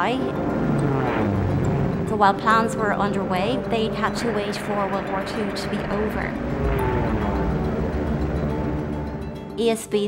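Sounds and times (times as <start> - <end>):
propeller aircraft passing by: 0.0 - 9.8
background music: 0.0 - 10.0.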